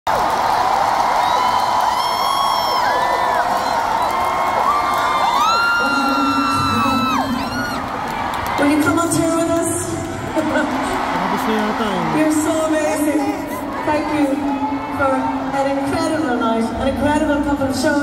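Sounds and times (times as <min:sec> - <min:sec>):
crowd cheering and whooping: 0:00.1 - 0:09.3, 0:10.2 - 0:15.6.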